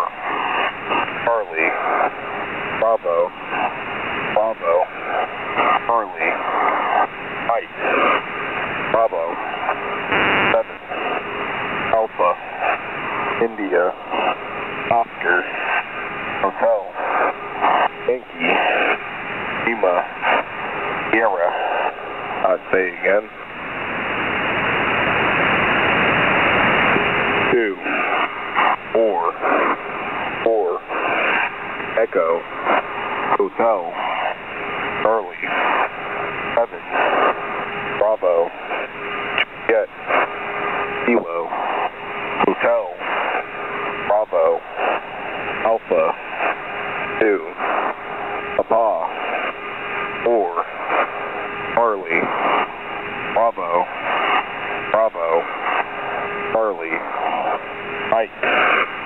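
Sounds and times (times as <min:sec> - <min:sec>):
distorted radio voice: 0:00.0 - 0:23.6, 0:24.3 - 0:59.0
radio static hiss: 0:00.0 - 0:59.0.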